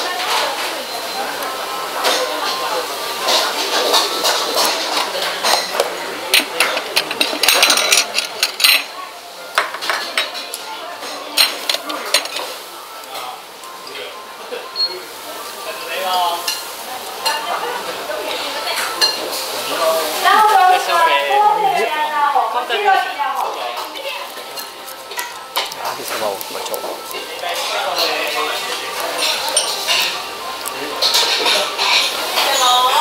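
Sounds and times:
dishes clinking: 0:02.0 - 0:09.0, 0:09.6 - 0:15.0, 0:18.3 - 0:19.8, 0:23.4 - 0:33.0
chopsticks clicking on ceramic plates: 0:23.4 - 0:32.2.

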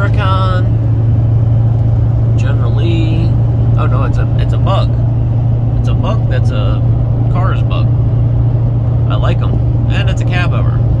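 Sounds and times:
car road and engine drone: 0:00.0 - 0:11.0.

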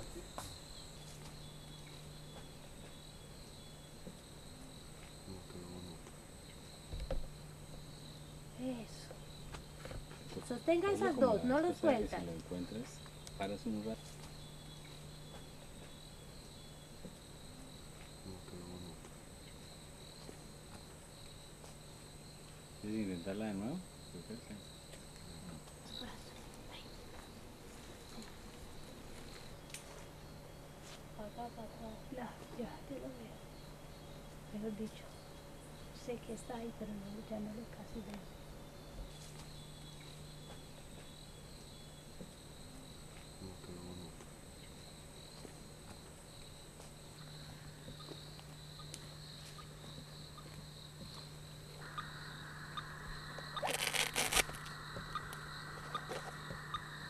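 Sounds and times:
high-pitched insect drone: 0:00.0 - 0:57.0.

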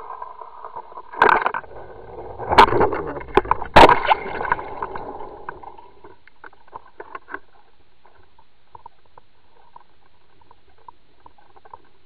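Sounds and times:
water rushing underwater: 0:00.0 - 0:07.2
faint underwater clicks and ticks: 0:04.5 - 0:12.0.

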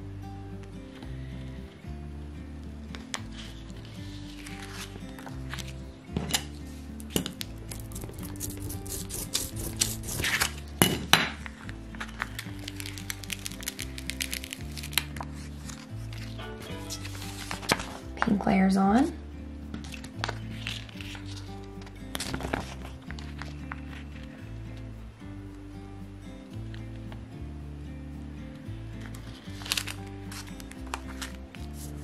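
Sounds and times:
background music: 0:00.0 - 0:32.0
plastic tape crinkling and clicking: 0:02.9 - 0:10.7, 0:11.3 - 0:18.3, 0:19.8 - 0:24.4, 0:29.0 - 0:32.0.

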